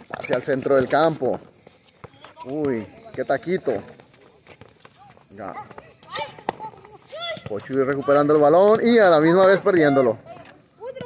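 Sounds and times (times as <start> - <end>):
voices calling out: 2.0 - 11.0.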